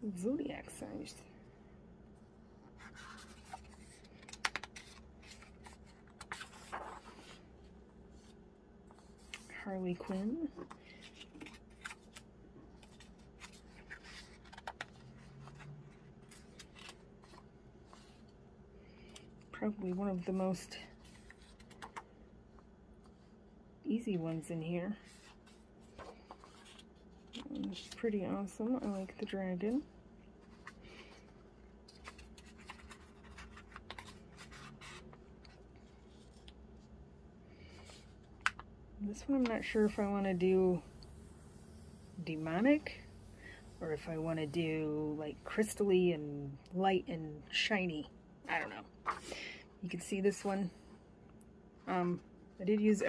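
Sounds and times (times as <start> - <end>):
faint paper rustling: 2.6 - 23.4, 24.0 - 44.6, 48.8 - 49.6
page turning: 2.8 - 7.4, 10.6 - 18.3, 21.0 - 22.1, 25.0 - 28.0, 31.8 - 36.6.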